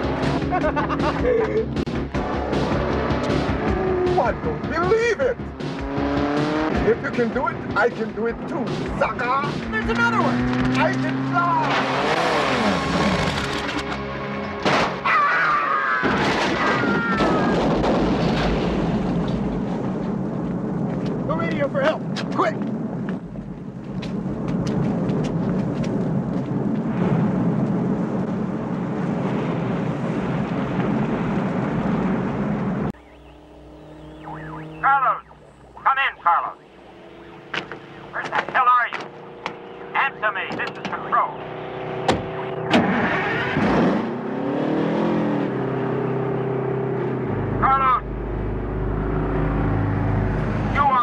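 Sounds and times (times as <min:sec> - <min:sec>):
action film music: 0:00.0 - 0:11.6
vehicle and crash effects: 0:08.6 - 0:15.1, 0:16.0 - 0:20.3, 0:40.5 - 0:44.8
dense steady rumble: 0:17.0 - 0:41.3
voices: 0:33.0 - 0:41.4, 0:47.6 - 0:48.1.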